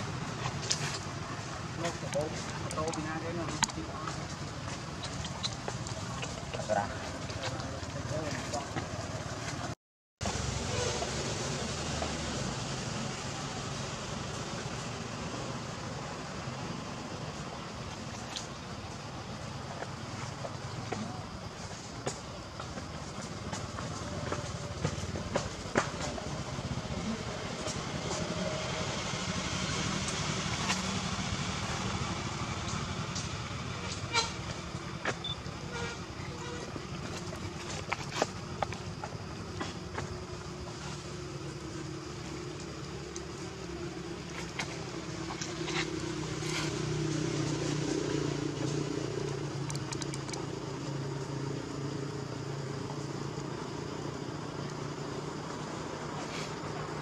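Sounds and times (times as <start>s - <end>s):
sharp clicks: 49.2s - 50.5s.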